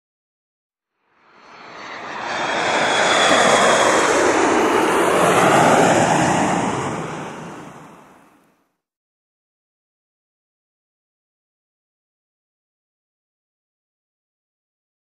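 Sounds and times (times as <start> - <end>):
jet aircraft flyby: 1.0 - 8.6.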